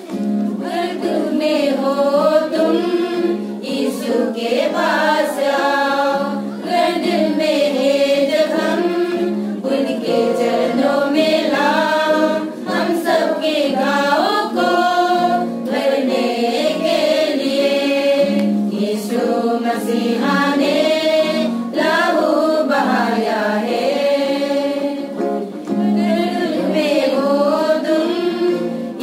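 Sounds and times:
women's choir singing a hymn: 0.5 - 29.0.

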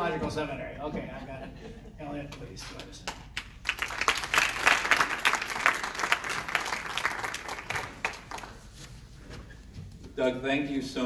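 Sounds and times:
audience applauding: 3.1 - 8.8.

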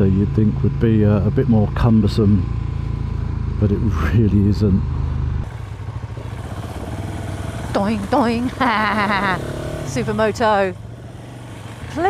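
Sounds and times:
motorcycle engine running: 0.0 - 12.0
single-cylinder engine running: 0.0 - 12.0
road and wind hiss: 2.5 - 7.8, 9.4 - 12.0.

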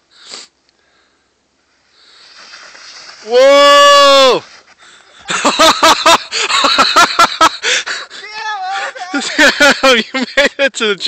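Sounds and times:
snowboard scraping on snow: 1.8 - 6.0.

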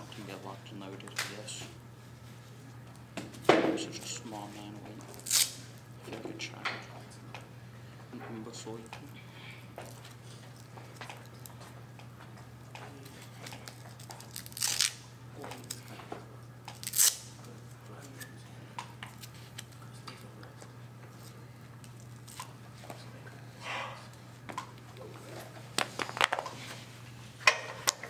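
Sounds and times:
steady low hum: 0.0 - 28.0
hook-and-loop strap ripping: 5.2 - 5.6, 13.6 - 15.0, 16.8 - 17.3.

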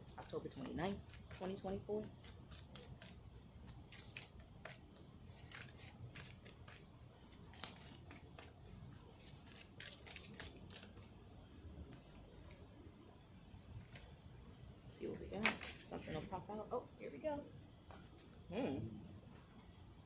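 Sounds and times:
cards being shuffled: 0.1 - 11.2, 15.3 - 16.1.

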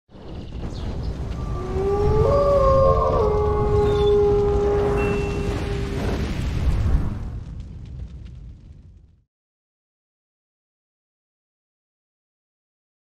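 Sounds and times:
deep low rumble: 0.2 - 9.2
wolf howling: 1.3 - 6.3
higher wolf howls: 1.4 - 6.3.

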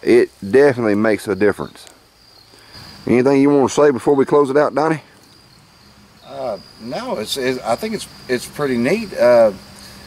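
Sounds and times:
man talking: 0.0 - 2.0, 3.0 - 5.2, 6.2 - 9.6
night insects trilling: 0.0 - 10.0.

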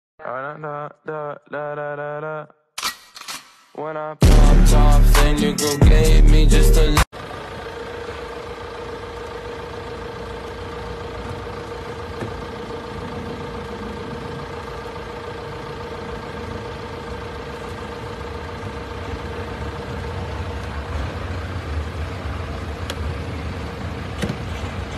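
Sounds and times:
loud music: 4.2 - 7.1
car engine idling hum: 4.2 - 24.9.

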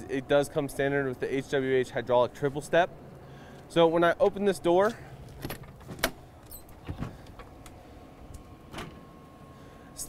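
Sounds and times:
faint steady motor tone: 0.0 - 10.0.

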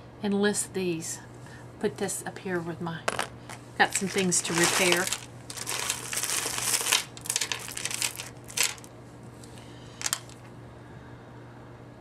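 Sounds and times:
beads clicking together: 3.1 - 8.9, 10.0 - 10.4
plastic bag crinkling: 3.1 - 8.9, 10.0 - 10.4.

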